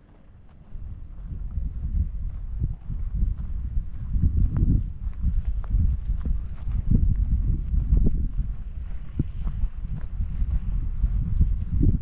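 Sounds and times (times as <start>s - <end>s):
footsteps on grass: 0.0s - 12.0s
steady low rumble: 0.0s - 12.0s.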